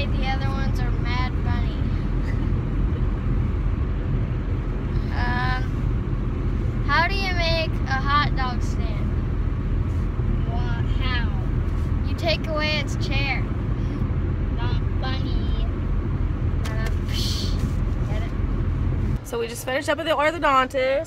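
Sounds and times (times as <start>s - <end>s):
car road rumble from inside: 0.0s - 21.0s.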